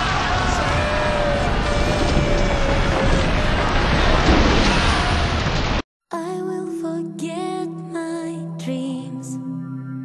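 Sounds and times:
debris crashing down: 0:00.0 - 0:05.8
rumbling and rattling: 0:00.0 - 0:05.8.

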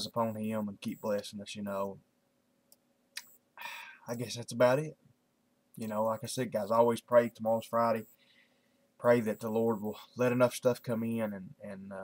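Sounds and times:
man speaking: 0:00.0 - 0:02.0, 0:03.6 - 0:05.0, 0:05.8 - 0:08.1, 0:09.0 - 0:12.0
short breath in: 0:03.6 - 0:04.0, 0:08.1 - 0:08.8.

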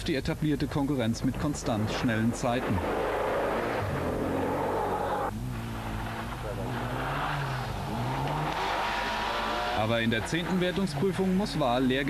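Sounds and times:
rally car engine revving: 0:01.1 - 0:12.0.

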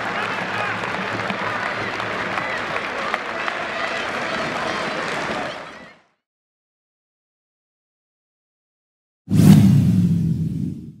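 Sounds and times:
loud whoosh: 0:09.3 - 0:11.0
low rumble: 0:09.3 - 0:11.0.

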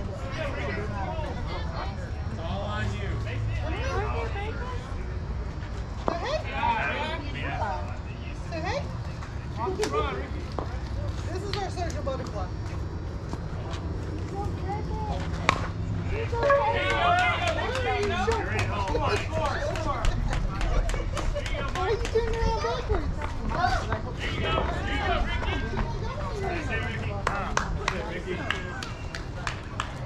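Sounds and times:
people talking and calling out: 0:00.0 - 0:30.0.

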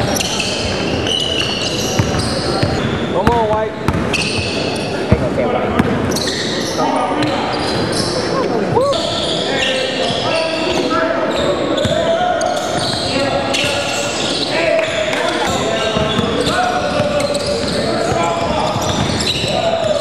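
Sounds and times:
shouting and chatter: 0:00.0 - 0:20.0
sneaker squeaks: 0:00.0 - 0:20.0
basketball bouncing: 0:00.6 - 0:06.2, 0:16.0 - 0:20.0.

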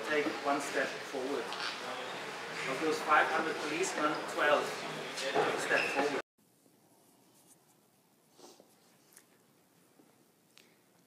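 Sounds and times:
soft rustles: 0:06.6 - 0:11.0.

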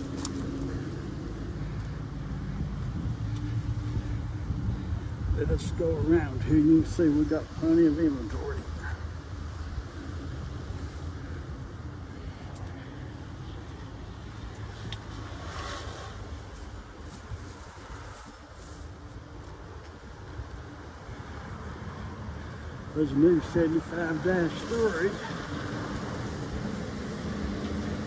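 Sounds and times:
distant motor vehicles rumbling: 0:00.0 - 0:28.0.

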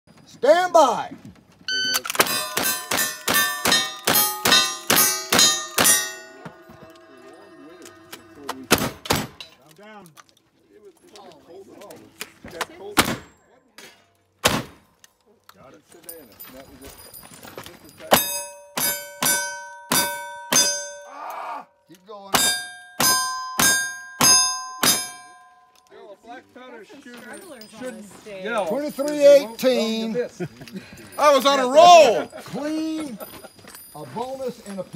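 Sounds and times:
steel plates ringing: 0:02.2 - 0:09.7, 0:18.0 - 0:21.4, 0:22.0 - 0:26.1
shotgun blasts: 0:13.0 - 0:13.3, 0:14.4 - 0:14.9.

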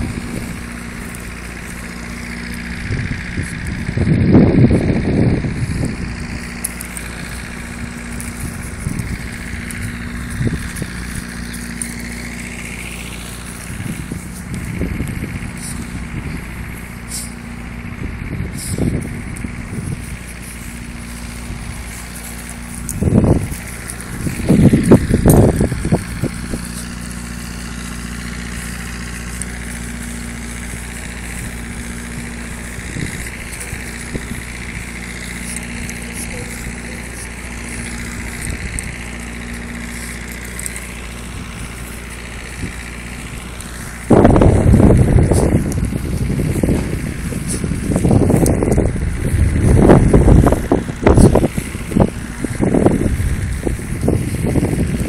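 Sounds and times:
low mechanical hum: 0:00.0 - 0:55.0
wind buffeting microphone: 0:00.0 - 0:55.0.

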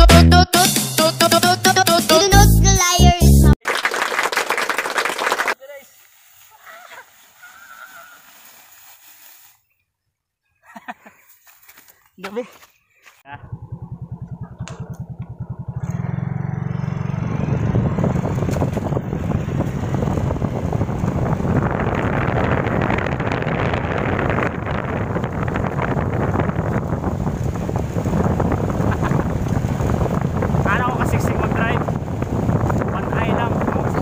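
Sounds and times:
motorcycle engine pulling away: 0:13.3 - 0:33.0
wind rush on microphone: 0:16.1 - 0:34.0.

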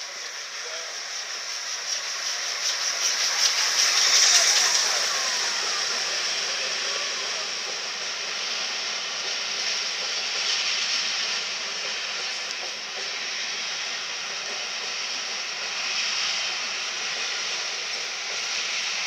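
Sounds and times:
train wheels rolling on rail: 0:00.0 - 0:19.0.

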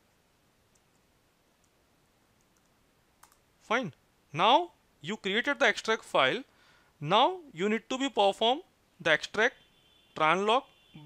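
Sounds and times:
computer keyboard clicks: 0:02.4 - 0:03.4.

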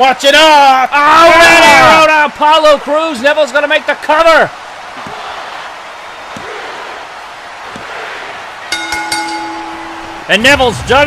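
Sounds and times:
arena crowd noise: 0:00.0 - 0:11.0
soft thumps: 0:06.3 - 0:06.6, 0:07.6 - 0:08.0
ring bell struck: 0:08.7 - 0:10.3.

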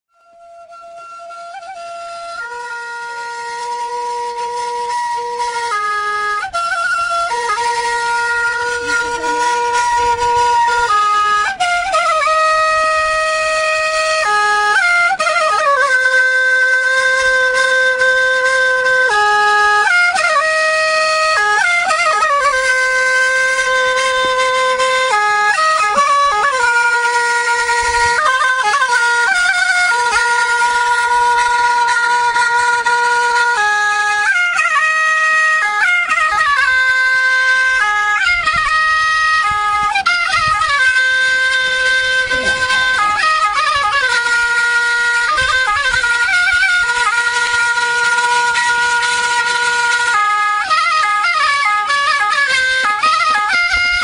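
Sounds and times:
solo woodwind melody: 0:00.1 - 0:54.0.

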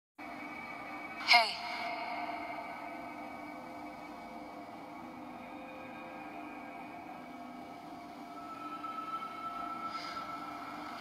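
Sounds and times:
ambient drone: 0:00.2 - 0:11.0.

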